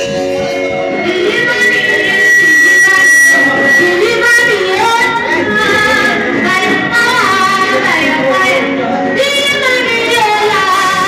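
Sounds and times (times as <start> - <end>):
music: 0.0 - 11.0
woman singing long gliding notes: 0.9 - 11.0.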